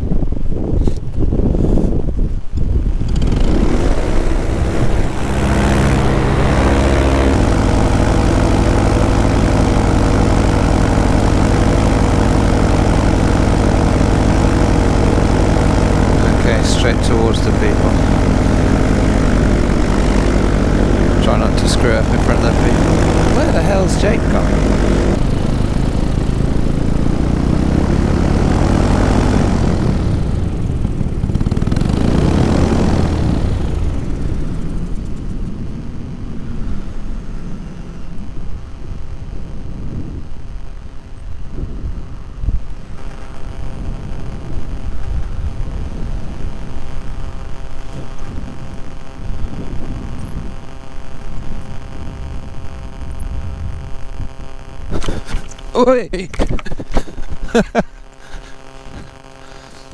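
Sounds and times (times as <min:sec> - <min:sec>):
wind rushing past: 0:00.0 - 0:55.5
paramotor engine and propeller: 0:00.0 - 0:59.9.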